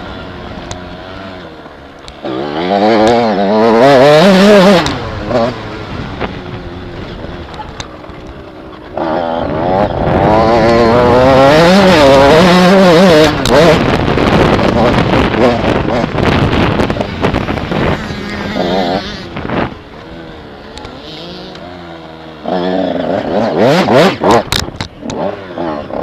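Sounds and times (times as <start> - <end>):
motorcycle engine revving: 0.0 - 26.0.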